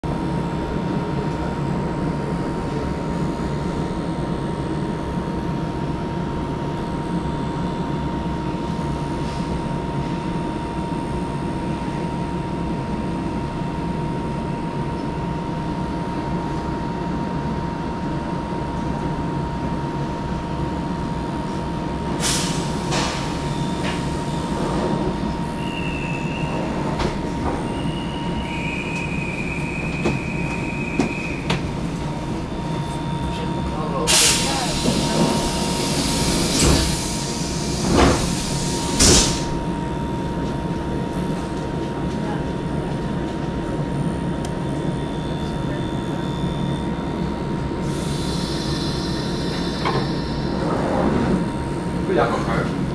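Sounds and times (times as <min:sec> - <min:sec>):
train rumbling on rails: 0:00.0 - 0:52.9
constant whine: 0:00.1 - 0:52.9
high-pitched wheel squeals: 0:25.6 - 0:26.8, 0:27.6 - 0:31.5.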